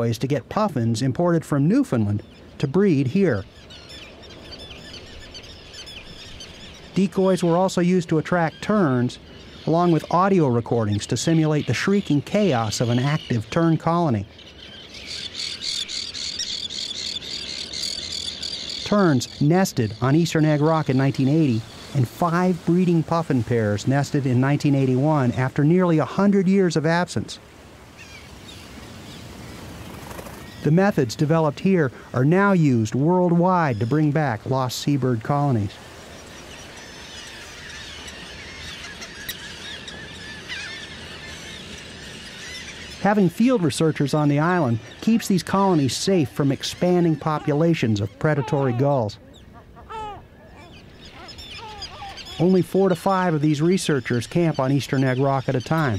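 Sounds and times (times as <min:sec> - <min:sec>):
seabirds calling: 0:00.0 - 0:55.9
terns chirping in a colony: 0:00.0 - 0:55.9
surf on rocks: 0:20.0 - 0:38.0.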